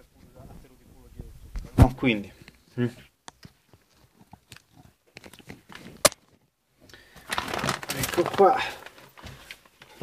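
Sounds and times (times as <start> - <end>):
crinkly rustle: 7.0 - 10.0.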